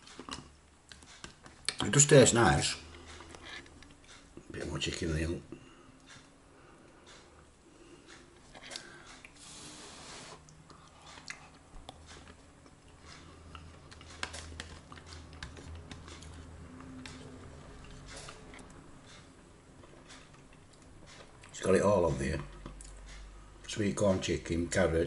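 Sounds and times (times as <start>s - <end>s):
person chewing: 0.0s - 1.8s, 2.8s - 4.5s, 7.0s - 21.6s, 22.4s - 23.3s.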